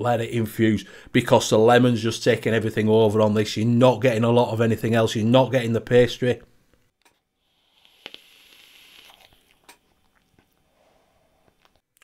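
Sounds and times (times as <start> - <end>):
hiss of vape draw: 7.4 - 9.6.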